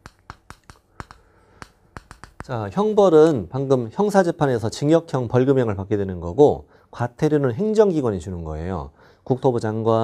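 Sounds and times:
chalk tapping on chalkboard: 0.0 - 2.9.

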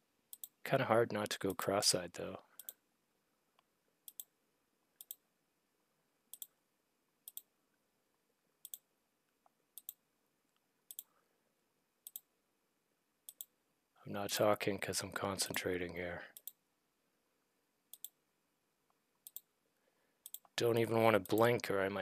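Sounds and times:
computer mouse clicks: 0.3 - 0.6, 2.6 - 2.8, 3.6 - 4.3, 5.0 - 5.2, 6.3 - 6.6, 7.2 - 7.5, 8.6 - 8.8, 9.8 - 10.0, 10.9 - 11.1, 12.0 - 12.3, 13.3 - 13.5, 17.9 - 18.2, 19.2 - 19.5, 20.2 - 20.6.

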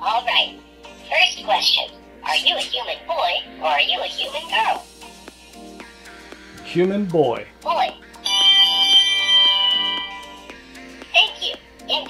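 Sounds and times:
robot electronic chime: 1.2 - 1.8, 8.2 - 10.6.

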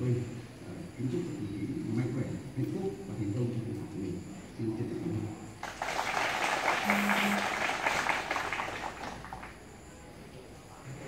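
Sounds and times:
crowd applauding: 5.6 - 9.7.

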